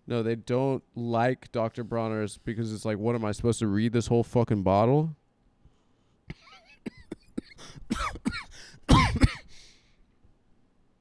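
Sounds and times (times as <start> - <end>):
man coughing: 6.3 - 9.7.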